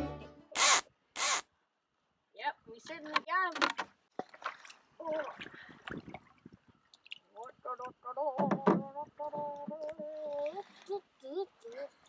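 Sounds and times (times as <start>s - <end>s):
small water sounds: 3.4s - 12.0s.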